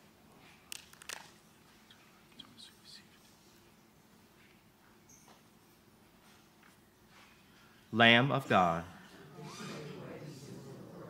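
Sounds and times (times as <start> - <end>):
faint whispering: 1.7 - 3.7.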